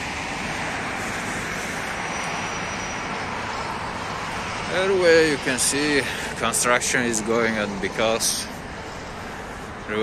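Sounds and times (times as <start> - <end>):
steady rushing roar: 0.0 - 10.0.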